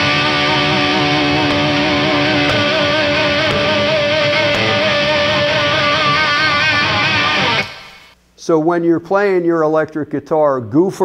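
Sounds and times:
overdriven electric guitar lead: 0.0 - 8.2.

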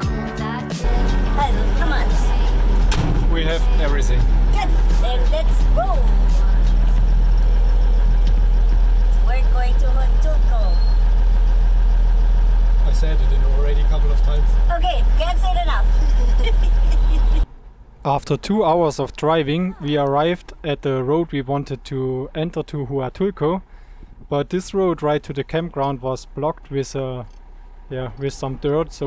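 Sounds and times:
diesel truck engine idling: 0.0 - 18.1, 19.3 - 29.0.

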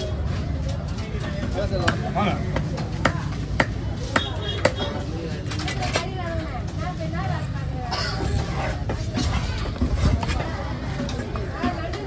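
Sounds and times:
knife chopping fish on wood: 1.8 - 4.9.

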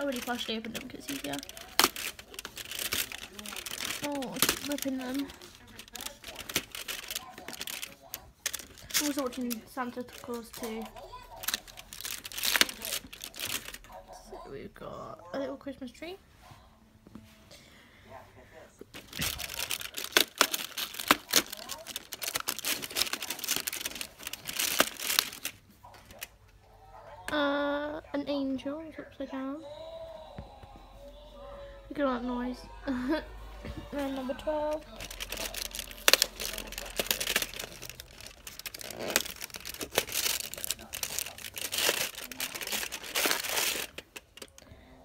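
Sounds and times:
cardboard and foil crinkling: 0.0 - 14.5, 18.9 - 26.4, 33.7 - 44.6.

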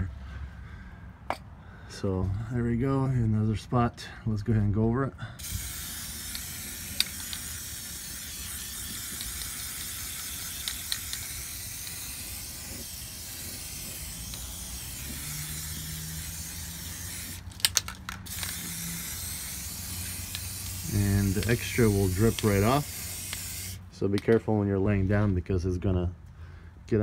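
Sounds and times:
aerosol can spraying: 5.4 - 23.8.

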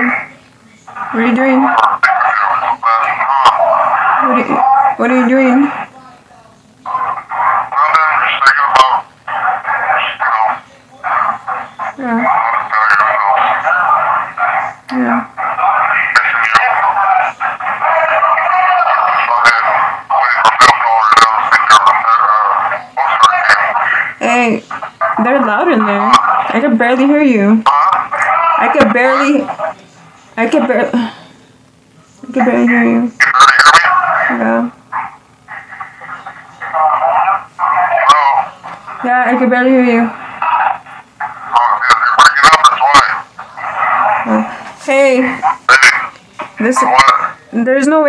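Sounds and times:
faint steady hum: 0.0 - 48.0
loud background noise: 0.0 - 48.0
voices chattering over phone line: 0.0 - 48.0.

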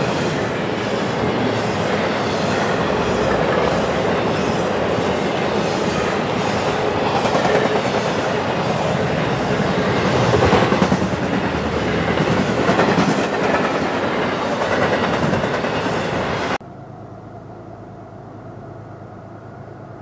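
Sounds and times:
freight train wheels rumbling on rail: 0.0 - 16.6.

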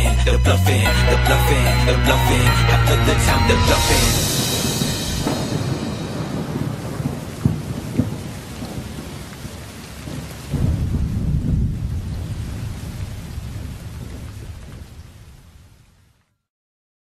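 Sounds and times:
thunder cracks: 3.6 - 15.8
low thunder rumble: 4.1 - 15.8
rain hiss: 4.1 - 16.2.

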